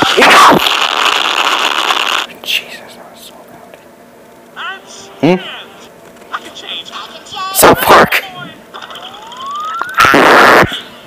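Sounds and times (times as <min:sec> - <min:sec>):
loud harsh noisy sound: 0:00.0 - 0:02.3, 0:08.8 - 0:11.0
faint whispering: 0:02.3 - 0:03.8.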